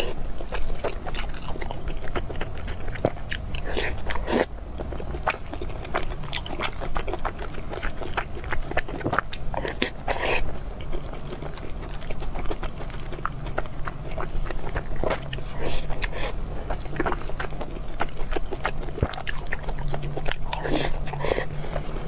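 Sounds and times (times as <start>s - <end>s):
person chewing food: 0.0s - 22.0s.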